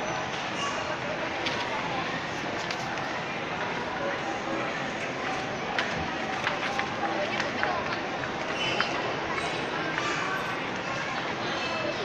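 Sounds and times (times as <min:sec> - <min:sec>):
busy crowd din: 0:00.0 - 0:12.0.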